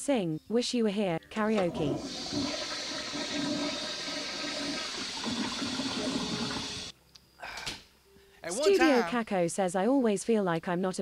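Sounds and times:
water rushing: 1.6 - 6.9.

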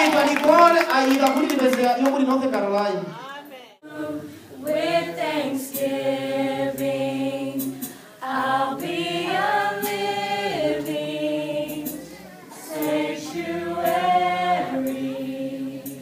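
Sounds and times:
group singing a hymn: 3.8 - 16.0.

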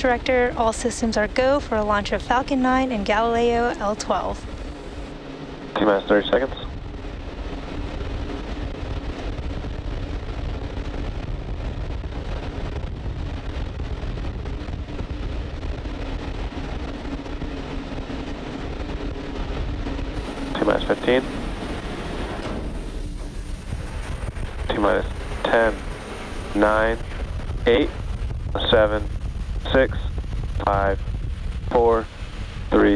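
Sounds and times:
low hum: 0.0 - 32.9
low rushing noise: 0.0 - 32.9
person speaking: 26.5 - 27.1.

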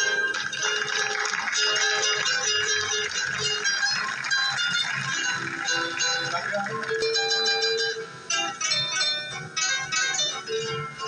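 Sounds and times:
plucked guitar melody: 0.0 - 11.0
strummed acoustic guitars: 0.0 - 11.0.

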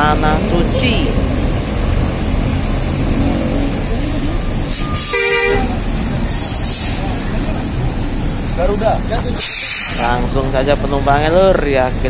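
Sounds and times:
low rumble of bus engines: 0.0 - 12.0
bus horn toot: 4.7 - 6.4
hiss of air: 6.2 - 7.2, 9.4 - 10.2.

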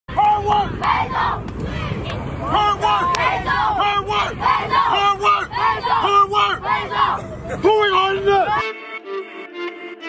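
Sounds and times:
young players shouting chant: 0.1 - 8.6.

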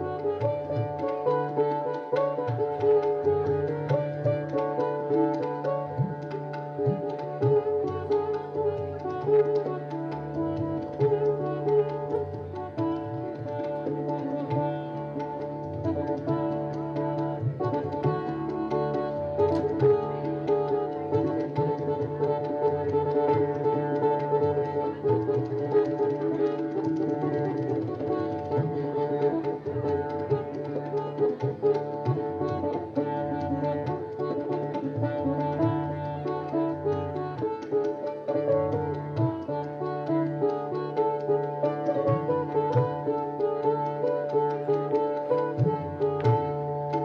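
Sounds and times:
fast tabla strokes: 0.0 - 47.0
plucked string melody: 0.0 - 47.0.

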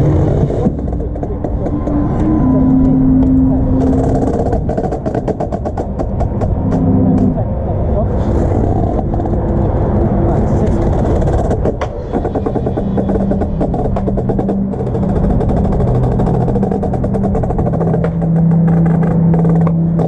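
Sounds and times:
held synth tones: 0.0 - 7.8, 11.9 - 20.0
heavy low rumble: 0.0 - 20.0.

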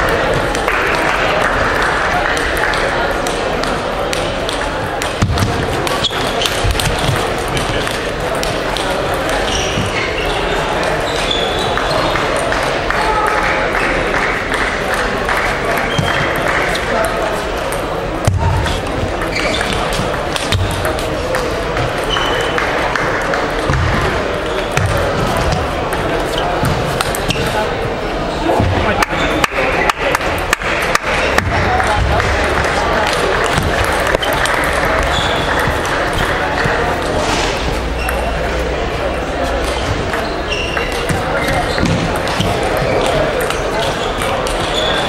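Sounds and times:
murmur of voices in hall: 0.0 - 45.0
table tennis balls clicking: 1.8 - 10.2, 14.4 - 23.9, 31.0 - 37.2, 39.6 - 45.0.

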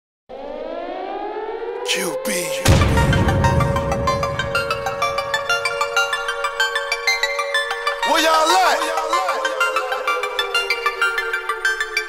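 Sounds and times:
air raid siren: 0.3 - 12.0.

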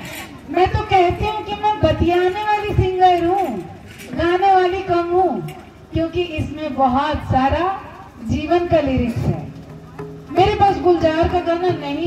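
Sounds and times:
woman singing unaccompanied: 10.3 - 12.0.

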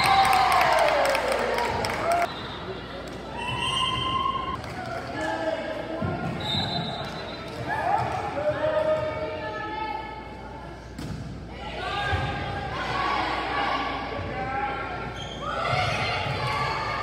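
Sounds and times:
players and spectators cheering: 0.0 - 5.2.

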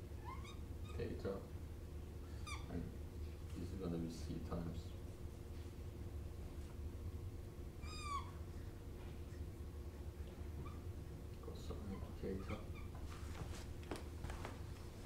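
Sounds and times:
low room hum: 0.0 - 15.0
marker squeaking on whiteboard: 0.2 - 1.1, 11.8 - 13.2.

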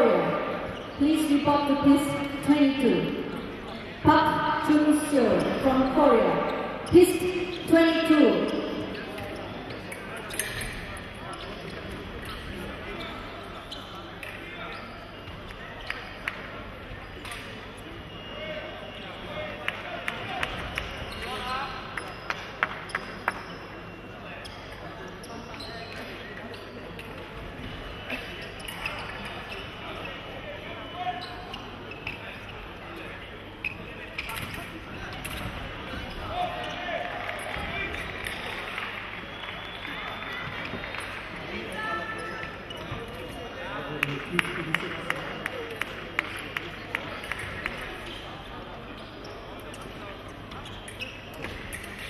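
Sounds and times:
murmur of voices: 0.0 - 52.0.

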